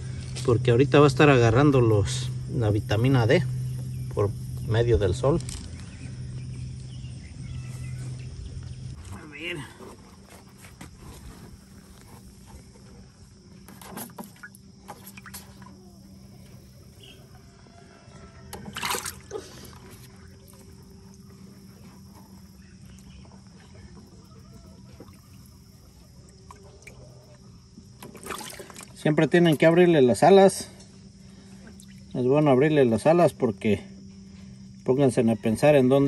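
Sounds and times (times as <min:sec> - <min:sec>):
water sloshing and splashing: 0:09.9 - 0:17.0, 0:18.5 - 0:29.7, 0:31.0 - 0:32.4.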